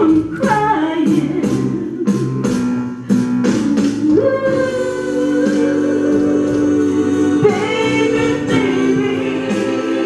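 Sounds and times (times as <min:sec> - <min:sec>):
woman singing into a microphone: 0:00.0 - 0:02.3, 0:03.6 - 0:10.0
backing track with guitar and beat: 0:00.0 - 0:04.6.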